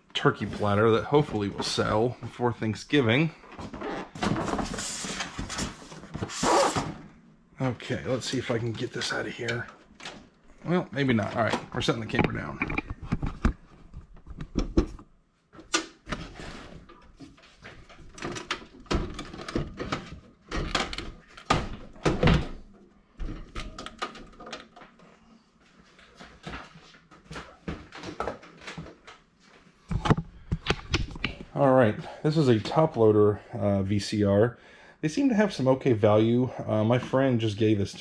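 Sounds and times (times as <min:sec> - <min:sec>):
knocks and thunks of boxes shifted: 0:03.3 - 0:07.1.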